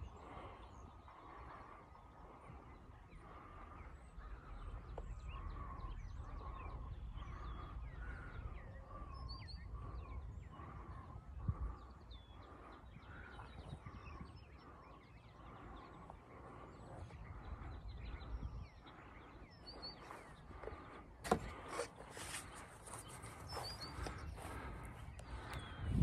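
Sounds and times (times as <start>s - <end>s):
birds calling: 0.0s - 26.0s
low microphone rumble: 0.0s - 26.0s.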